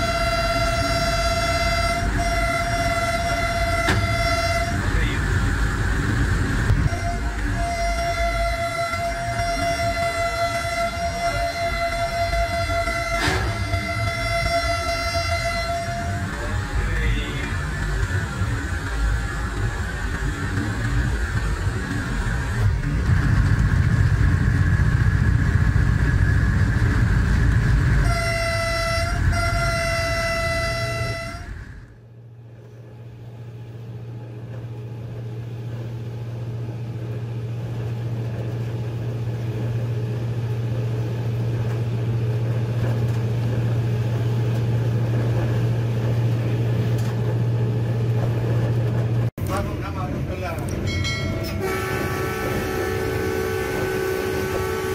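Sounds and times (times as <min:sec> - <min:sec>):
locomotive horn blasts: 0:00.0 - 0:05.3, 0:06.7 - 0:16.8, 0:28.0 - 0:31.9, 0:51.0 - 0:54.9
diesel locomotive running: 0:00.0 - 0:54.9
steady low engine hum: 0:00.0 - 0:54.9.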